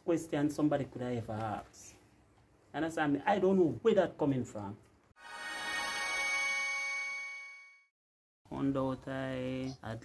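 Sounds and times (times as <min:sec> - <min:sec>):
bright metallic chime: 0:05.2 - 0:07.9.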